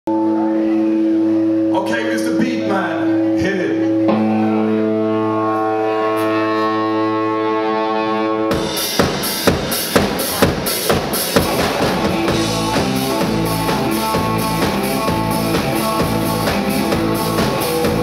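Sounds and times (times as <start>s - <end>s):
electric guitar chords: 0.1s - 18.0s
drum kit and band playing: 2.5s - 18.0s.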